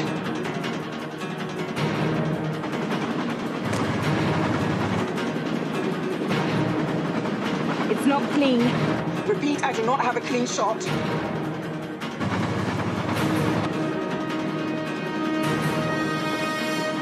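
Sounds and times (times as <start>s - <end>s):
driving orchestral score: 0.0s - 17.0s
heavy drums: 0.0s - 17.0s.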